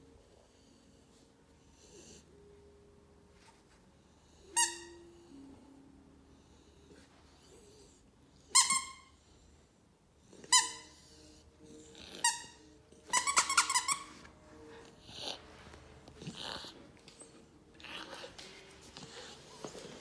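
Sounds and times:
dog toy squeaking: 0:08.5 - 0:09.1, 0:10.4 - 0:11.0, 0:12.1 - 0:14.3.

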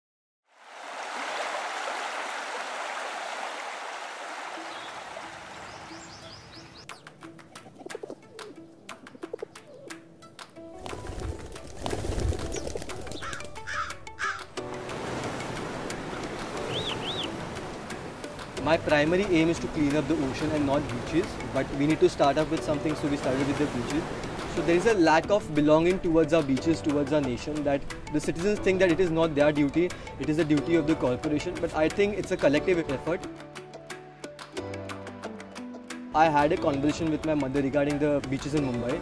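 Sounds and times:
sea surf washing on beach: 0:00.5 - 0:06.8, 0:14.6 - 0:30.2
birds calling: 0:04.0 - 0:14.6, 0:15.2 - 0:18.5
short high bird chirps: 0:05.6 - 0:07.1, 0:16.7 - 0:17.4.

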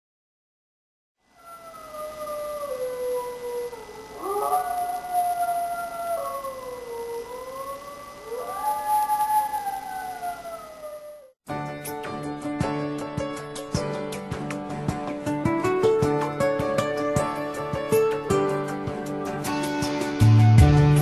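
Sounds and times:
wolves howling: 0:01.4 - 0:11.4.

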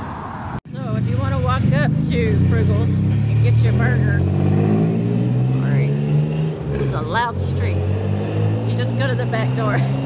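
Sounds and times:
road traffic: 0:00.0 - 0:10.0
vehicle engine rumbling: 0:00.0 - 0:10.0
woman talking: 0:00.7 - 0:04.2, 0:06.8 - 0:07.8, 0:08.6 - 0:10.0.

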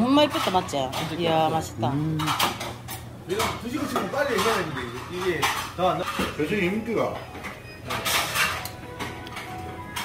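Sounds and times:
dishes and cutlery clinking: 0:00.2 - 0:10.0.

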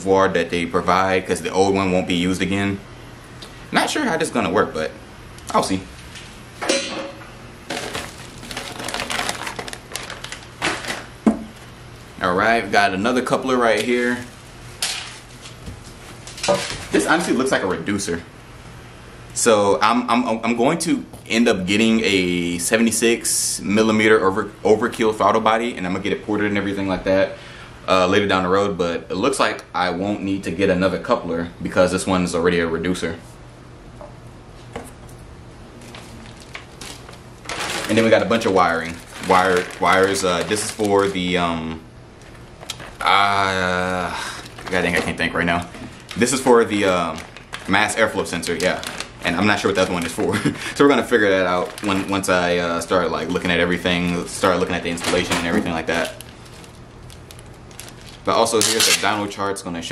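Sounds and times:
packing paper crinkling: 0:07.7 - 0:17.4, 0:35.7 - 0:59.4.

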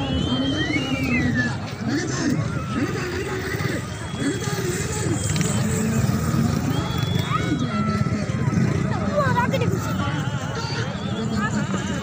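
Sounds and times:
crowd of spectators: 0:00.0 - 0:12.0.

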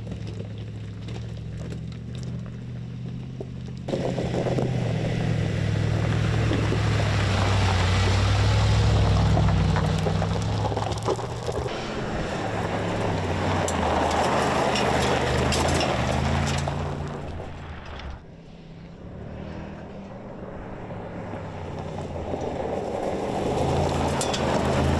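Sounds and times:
tyres crunching gravel: 0:00.0 - 0:18.2, 0:21.1 - 0:24.9
engine running at low revs: 0:00.0 - 0:24.9.

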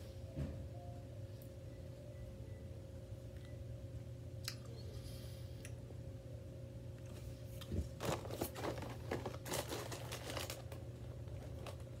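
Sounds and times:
snack packaging crinkling: 0:07.9 - 0:12.0.

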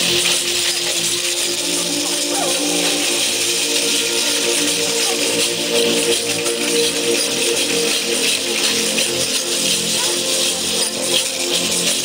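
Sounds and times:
shakers rattling: 0:00.0 - 0:12.0
steady held music tones: 0:00.0 - 0:12.0.

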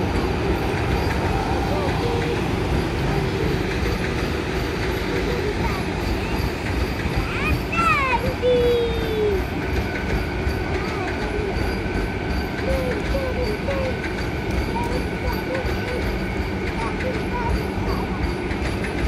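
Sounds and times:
train wheels rumbling on rails: 0:00.0 - 0:19.0.

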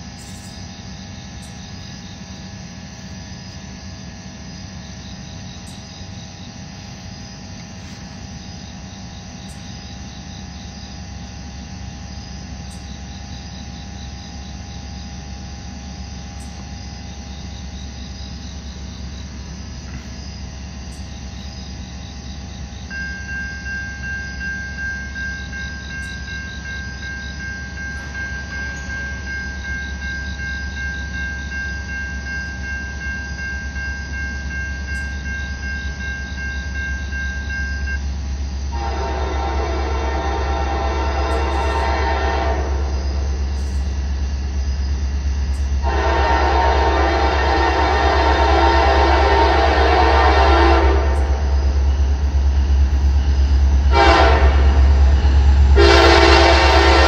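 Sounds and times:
crossing warning tone: 0:00.0 - 0:19.8, 0:20.8 - 0:44.2, 0:45.3 - 0:57.0
diesel locomotive rumble: 0:00.0 - 0:57.0
insects chirping: 0:00.0 - 0:57.0
locomotive air horn: 0:38.7 - 0:43.3, 0:45.8 - 0:51.6, 0:53.9 - 0:57.0.

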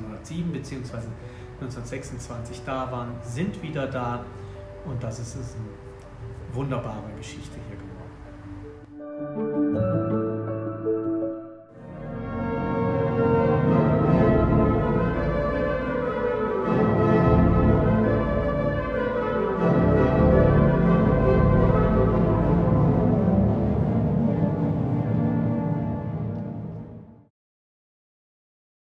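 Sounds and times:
pipe organ playing chords: 0:08.1 - 0:27.1.

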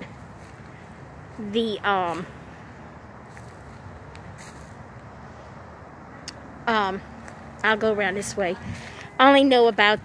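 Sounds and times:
person speaking: 0:01.3 - 0:02.4, 0:06.6 - 0:10.0.

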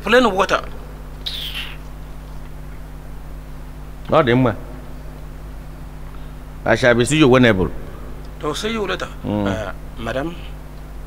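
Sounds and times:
steady low hum: 0:00.0 - 0:11.0
high-pitched chirp: 0:01.2 - 0:01.9.

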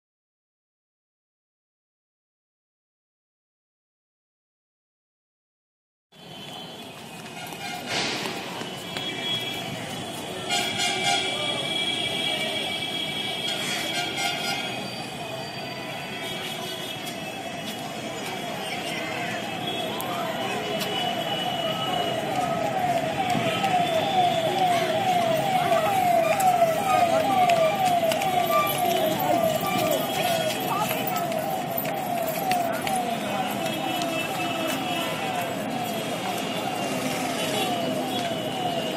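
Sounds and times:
crowd chatter: 0:06.3 - 0:38.9
electronic warning tone: 0:21.4 - 0:38.9.

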